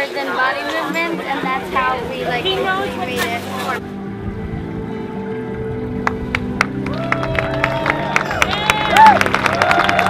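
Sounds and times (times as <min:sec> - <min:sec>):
ambient music low sustained notes: 0:00.8 - 0:10.0.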